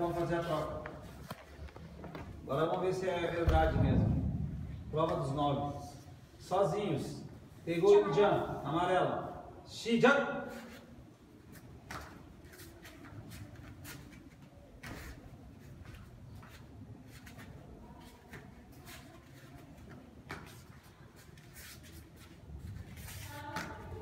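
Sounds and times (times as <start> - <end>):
bare feet on foam mats: 0.0 - 4.3, 10.5 - 24.0
uniform swishing: 20.4 - 24.0.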